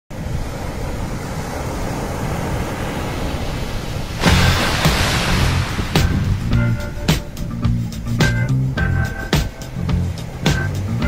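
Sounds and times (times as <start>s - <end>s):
sea water sloshing: 1.6s - 7.6s.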